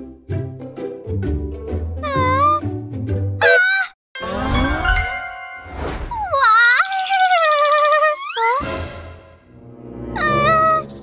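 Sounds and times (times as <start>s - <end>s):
cartoon character whiny whimper: 2.0s - 2.7s, 6.1s - 8.6s, 10.2s - 10.8s.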